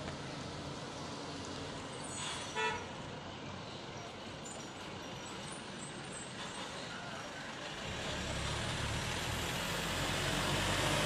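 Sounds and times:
small truck approaching: 0.0 - 11.0.

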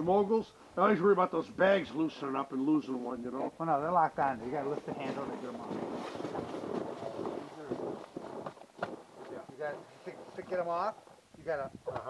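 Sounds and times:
men speaking indistinctly: 0.0 - 8.0, 9.3 - 12.0.

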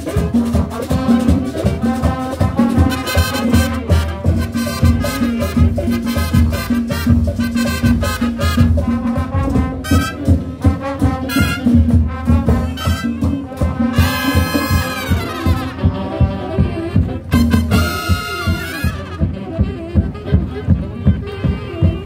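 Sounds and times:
marching band brass: 0.0 - 22.0
steady drum beat: 0.0 - 22.0.

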